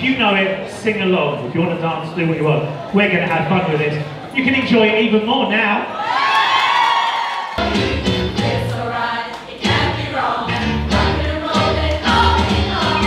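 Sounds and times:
choir singing pop song: 7.6 - 13.0.

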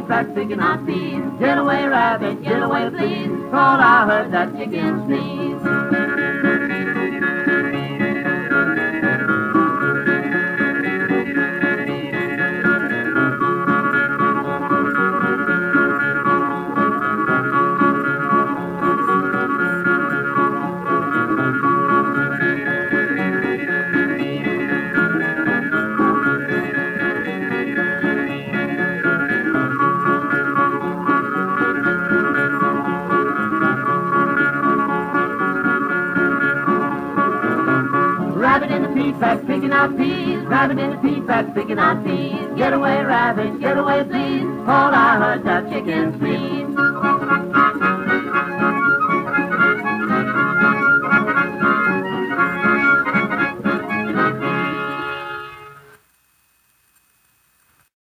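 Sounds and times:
string band playing: 0.0 - 56.0
strummed guitar: 0.0 - 56.0.

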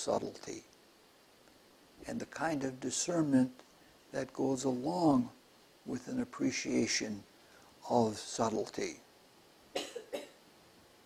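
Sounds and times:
man coughing: 9.8 - 10.4.

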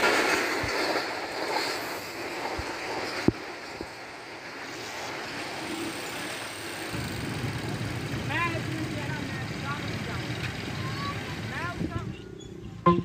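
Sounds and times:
train coaches rolling over rails: 0.0 - 13.0.

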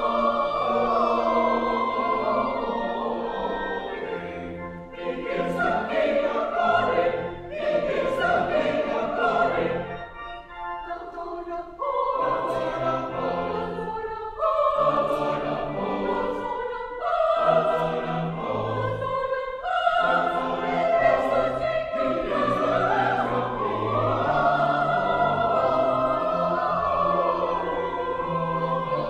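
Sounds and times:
church choir singing: 0.0 - 29.0
pipe organ: 0.0 - 29.0.

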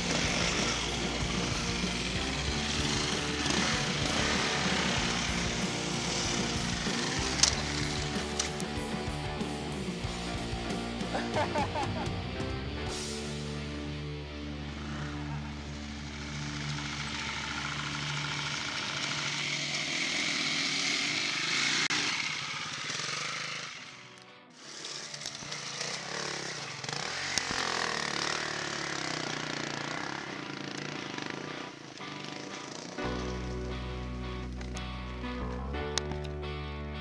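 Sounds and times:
dirt bike engines revving: 0.0 - 37.0.

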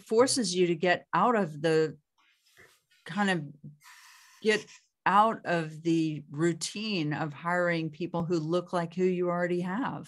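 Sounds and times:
woman speaking: 0.0 - 2.0, 3.1 - 3.7, 4.4 - 10.0.

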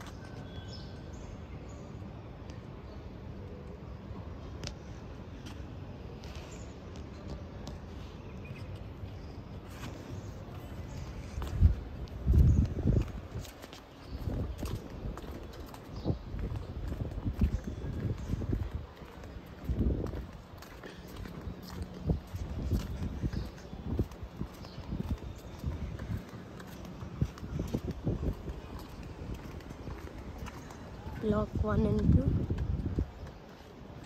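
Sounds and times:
footsteps on paved path: 0.0 - 34.0.

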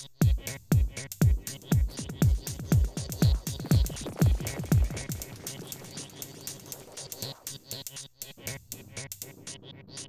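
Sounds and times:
deep repeating techno beat: 0.0 - 10.0
high percussive ticks: 2.0 - 8.4.

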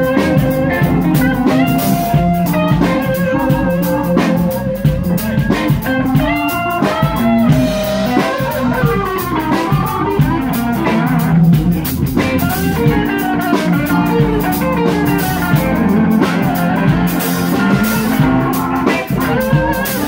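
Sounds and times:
bass: 0.0 - 20.0
drum kit: 0.0 - 20.0
electric guitar lines with bending notes: 0.0 - 20.0
keyboard: 0.0 - 20.0.

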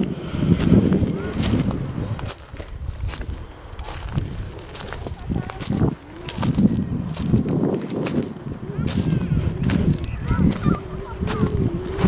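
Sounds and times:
footsteps crunching on pebbles: 0.0 - 12.0
wind rumbling on microphone: 0.0 - 12.0
faint high chirps: 6.0 - 7.6, 8.6 - 12.0.

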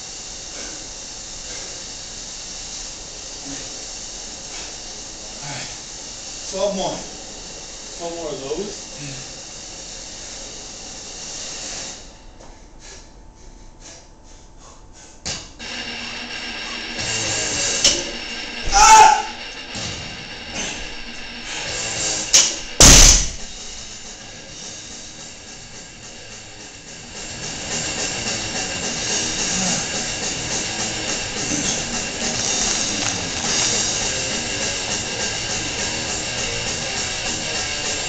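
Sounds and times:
background music: 21.4 - 38.0
barbell thudding on gym floor: 22.8 - 23.5.

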